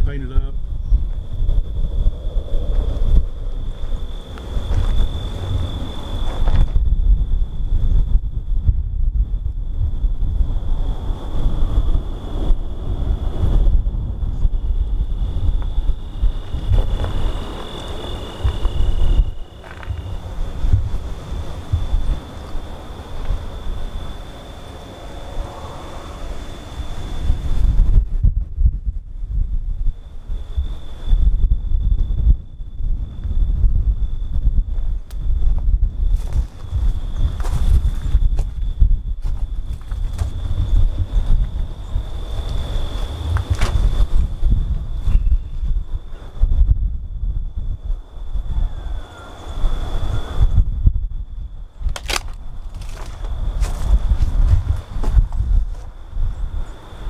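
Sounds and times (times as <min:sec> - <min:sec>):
insects buzzing: 0:00.0 - 0:57.0
lower buzz: 0:00.0 - 0:57.0
wind buffeting microphone: 0:00.0 - 0:57.0.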